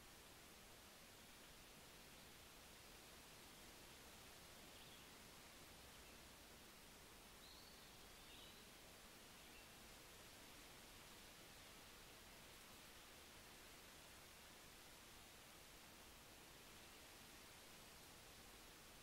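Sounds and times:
background hiss: 0:00.0 - 0:19.0
faint high chirps: 0:07.4 - 0:08.7.

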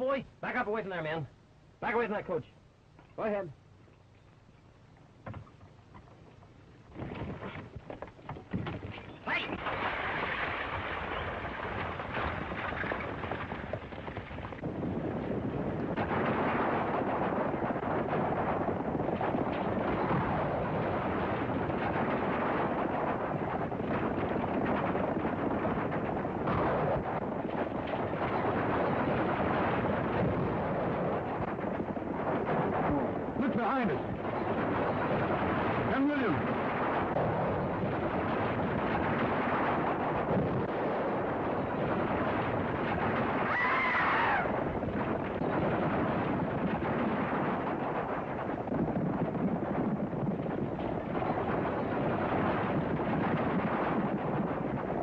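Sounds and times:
horses galloping: 0:05.4 - 0:55.0.

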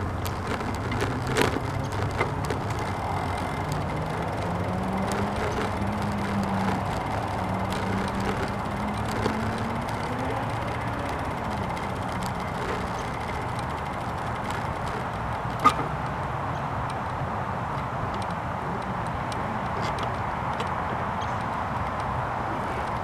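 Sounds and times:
low engine hum: 0:00.0 - 0:23.0
road traffic rumble: 0:00.0 - 0:23.0.

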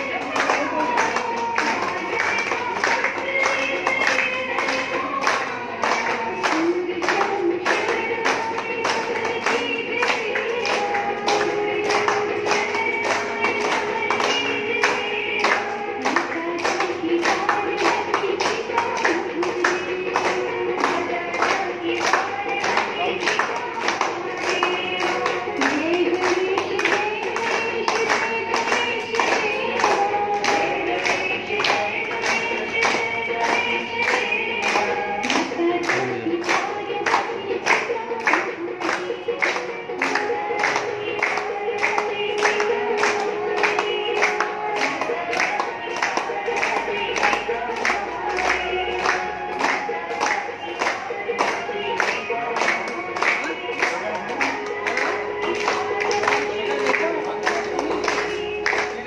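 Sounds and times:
hand-clapping in time: 0:00.0 - 0:59.0.

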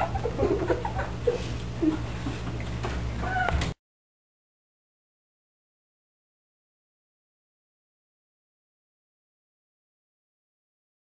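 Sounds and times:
steady electrical hum: 0:00.0 - 0:03.8
high-pitched meow-like calls: 0:03.2 - 0:03.7.

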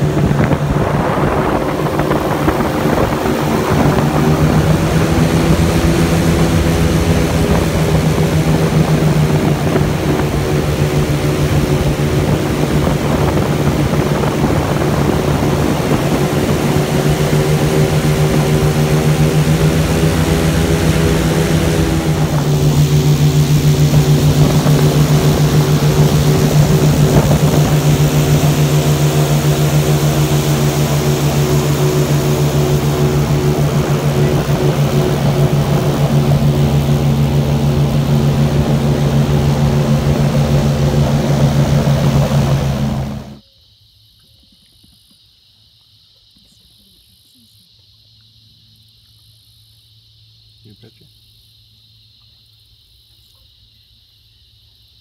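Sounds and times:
airboat engine and propeller drone: 0:00.0 - 0:43.4.

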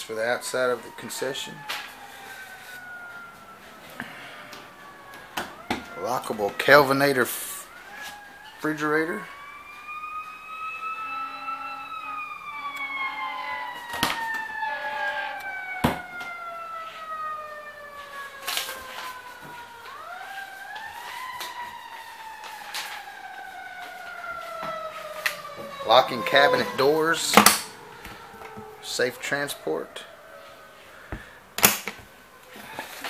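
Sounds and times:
siren wailing: 0:00.0 - 0:33.0.

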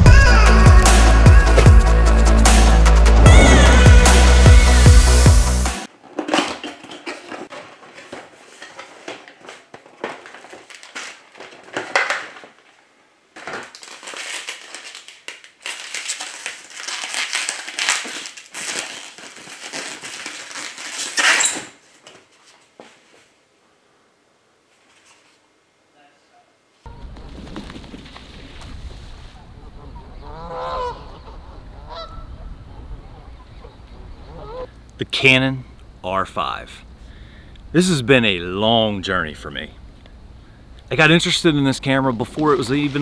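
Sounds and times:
wrapping paper crinkling: 0:07.5 - 0:12.8, 0:13.4 - 0:22.7
geese honking: 0:29.7 - 0:32.4, 0:33.6 - 0:34.7.

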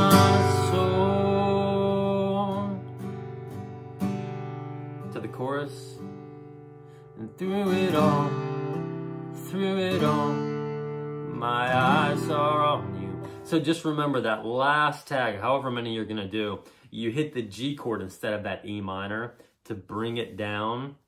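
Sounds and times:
person singing softly: 0:00.0 - 0:02.9
acoustic guitar strumming chords: 0:00.0 - 0:15.8.

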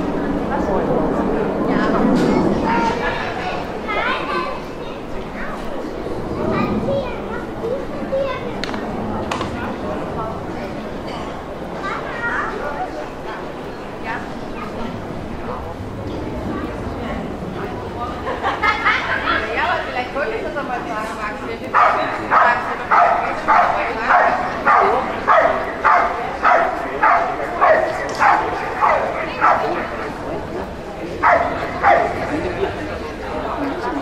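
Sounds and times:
dog barking: 0:21.8 - 0:29.9, 0:31.2 - 0:32.2.

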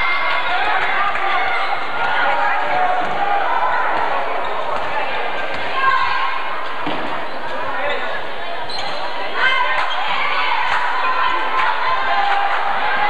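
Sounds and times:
spectators talking: 0:00.0 - 0:13.0.

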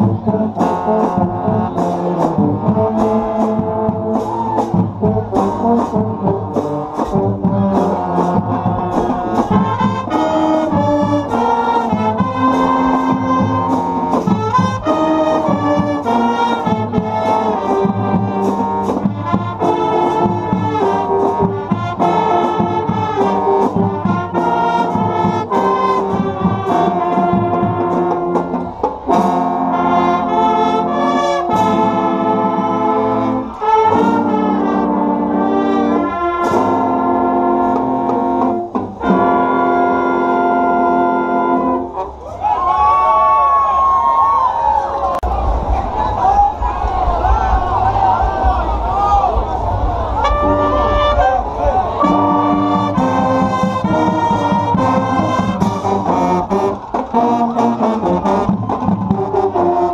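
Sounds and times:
marching band playing: 0:00.0 - 0:43.2, 0:45.0 - 0:59.9.

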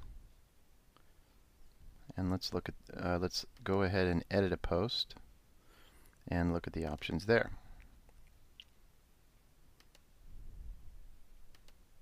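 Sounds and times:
faint computer mouse clicks: 0:09.8 - 0:10.1, 0:11.5 - 0:11.8.

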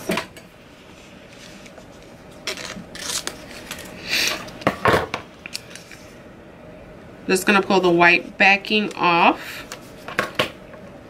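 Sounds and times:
plastic tape rustling: 0:01.3 - 0:04.6.

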